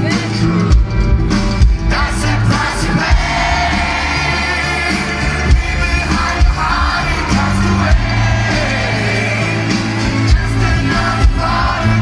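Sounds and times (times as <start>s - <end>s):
live rock band playing: 0.0s - 12.0s
man singing into microphone: 1.9s - 12.0s.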